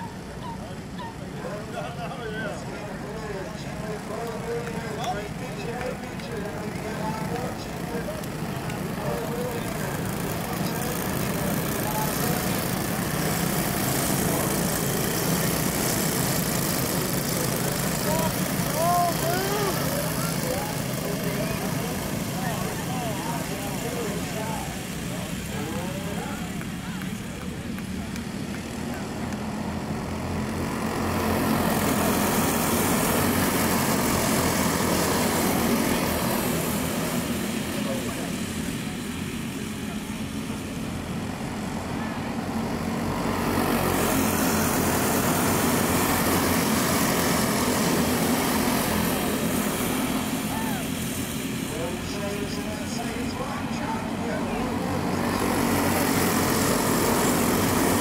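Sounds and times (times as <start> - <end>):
go-kart engines at full throttle: 0.0 - 58.0.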